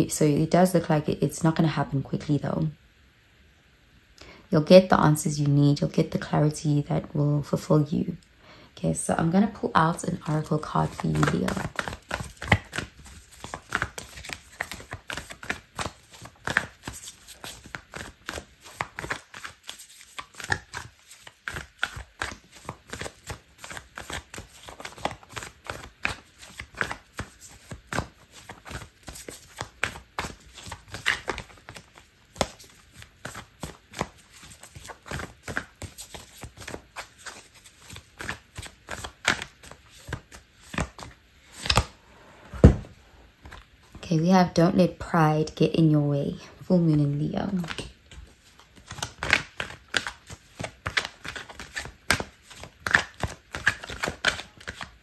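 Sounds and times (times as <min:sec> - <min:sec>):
cards being shuffled: 0:10.1 - 0:42.0, 0:47.5 - 0:55.0.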